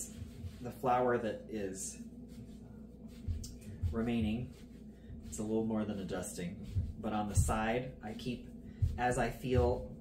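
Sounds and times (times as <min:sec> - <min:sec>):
hands kneading dough: 0:00.0 - 0:10.0.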